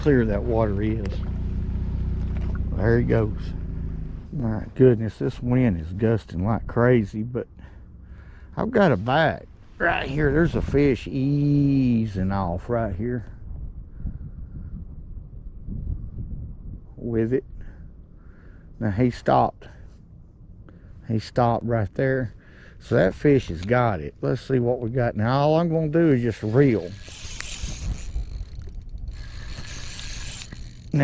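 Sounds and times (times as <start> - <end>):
wind rumble on microphone: 0.0 - 7.2, 9.0 - 20.7, 23.0 - 31.0
wind buffeting microphone: 10.0 - 18.2, 26.0 - 31.0
fishing reel gears clicking: 26.5 - 31.0.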